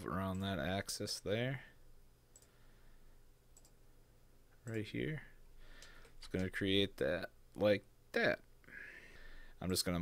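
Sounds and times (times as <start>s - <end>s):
faint mouse clicks: 2.3s - 2.6s, 3.5s - 3.8s, 5.7s - 6.6s.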